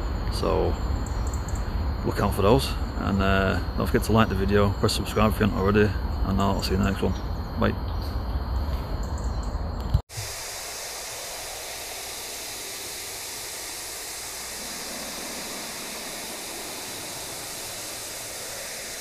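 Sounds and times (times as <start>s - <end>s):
static hiss: 10.1s - 19.0s.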